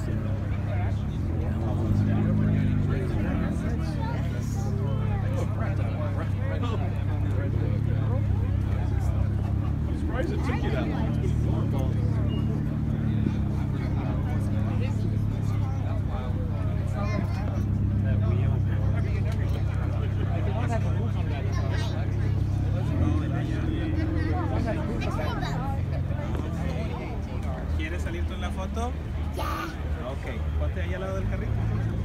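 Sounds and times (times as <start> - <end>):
car engine idling: 0.0 - 32.0
crowd chatter: 0.0 - 32.0.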